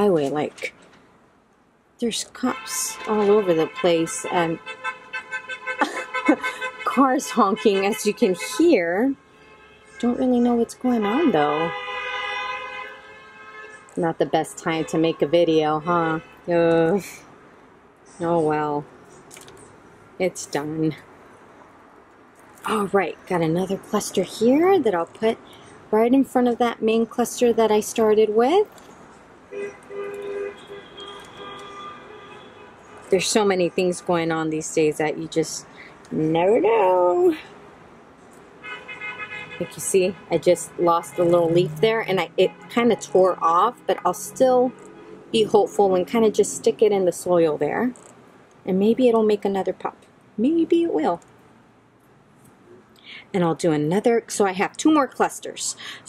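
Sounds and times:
car horns honking: 2.4s - 10.4s, 11.0s - 16.8s, 29.5s - 33.2s, 38.6s - 44.1s.

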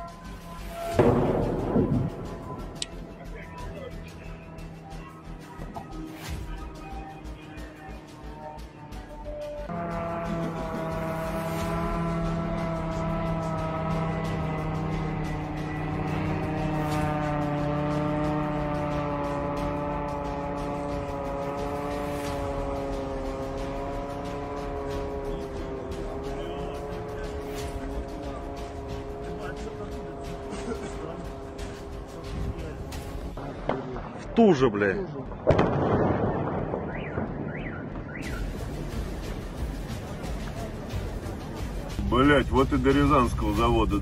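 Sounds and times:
drone engine droning overhead: 0.0s - 34.2s, 35.3s - 44.0s.

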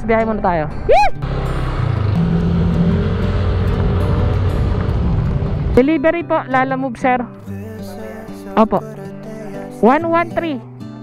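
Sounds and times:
motorcycle engine running: 1.2s - 6.4s.

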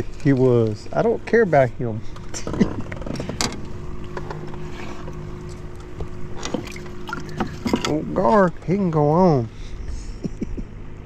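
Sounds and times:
electric motor humming: 0.0s - 10.0s.

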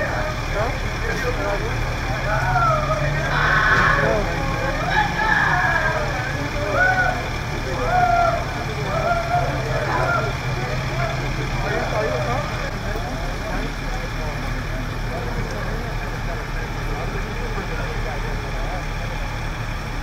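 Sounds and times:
fire engine engines idling: 0.0s - 20.0s
people talking indistinctly: 0.0s - 20.0s.

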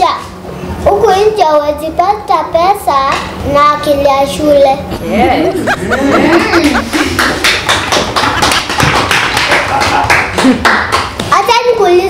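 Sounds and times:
children clapping: 6.6s - 11.4s.

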